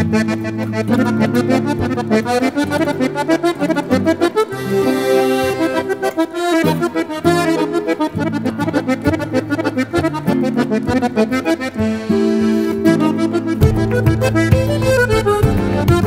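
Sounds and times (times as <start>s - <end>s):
button accordion folk melody: 0.0s - 16.0s
held bass notes: 0.1s - 16.0s.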